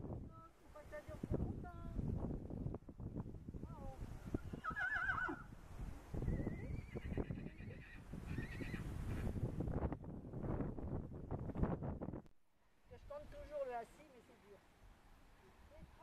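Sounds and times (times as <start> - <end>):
horses whinnying: 4.5 - 5.5, 6.5 - 8.9.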